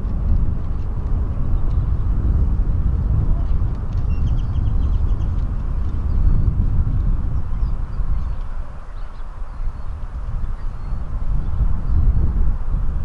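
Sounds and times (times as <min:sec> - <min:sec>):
low outdoor rumble: 0:00.0 - 0:13.0.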